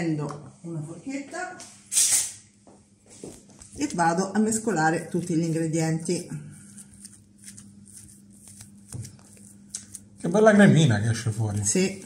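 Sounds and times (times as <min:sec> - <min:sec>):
fork mashing food in a bowl: 0:03.8 - 0:12.0.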